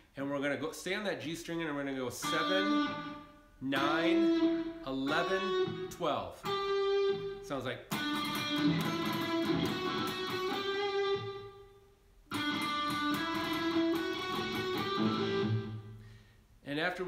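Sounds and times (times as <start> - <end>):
electric guitar solo lick: 2.2 - 11.7, 12.3 - 16.0.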